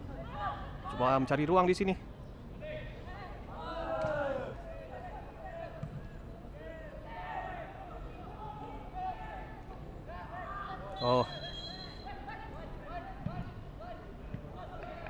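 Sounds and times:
distant voices shouting: 2.6s - 5.7s.

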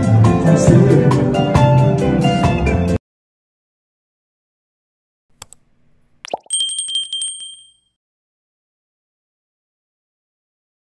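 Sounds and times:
mouse click: 5.4s - 5.6s
notification bell ding: 6.3s - 7.9s.

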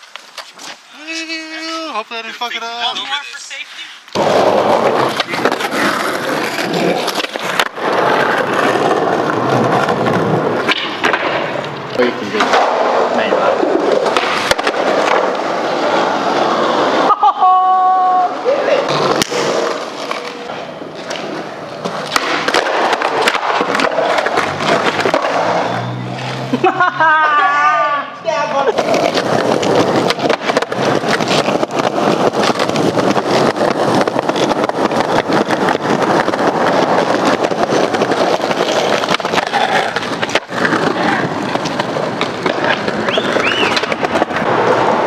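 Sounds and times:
skateboard wheels rolling on concrete: 0.0s - 45.0s
skateboard clacking on ground: 4.1s - 17.1s, 18.0s - 26.4s, 28.2s - 45.0s.

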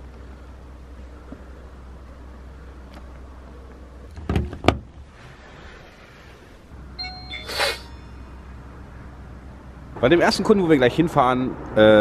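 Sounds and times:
low steady hum: 0.0s - 10.1s
short electronic chime: 7.0s - 8.5s.

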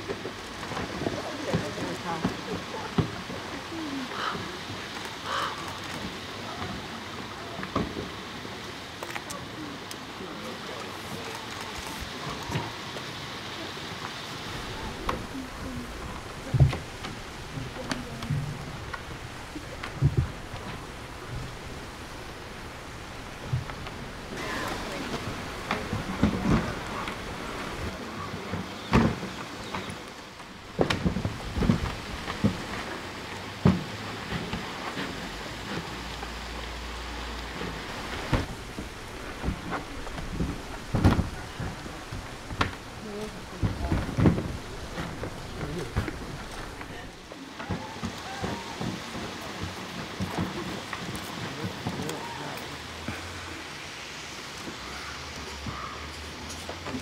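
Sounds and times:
waterfall rushing: 0.0s - 57.0s
bear knocking plastic trash cart: 43.5s - 50.8s.

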